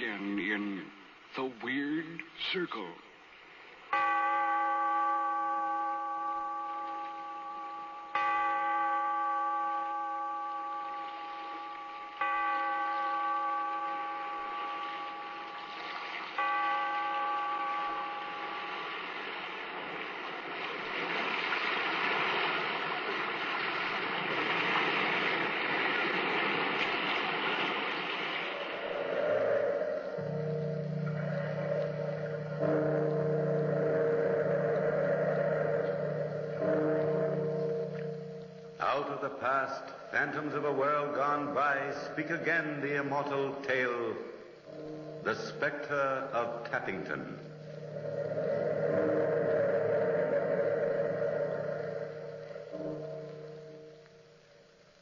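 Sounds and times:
large bell tolling: 3.9 - 20.0, 28.9 - 54.5
low musical chords: 3.9 - 20.0, 28.9 - 55.0
surf washing: 11.1 - 43.0.

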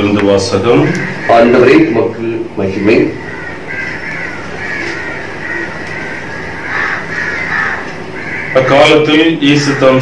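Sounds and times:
birds calling: 0.0 - 10.0.

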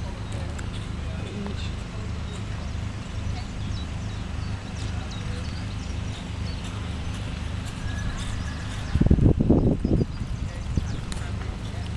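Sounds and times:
low rumble: 1.7 - 11.6
horse hoofbeats on grass: 4.5 - 11.9.

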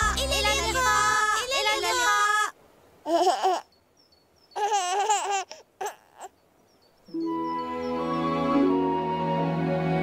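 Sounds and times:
baby giggling and babbling: 3.0 - 3.8, 4.5 - 6.4.

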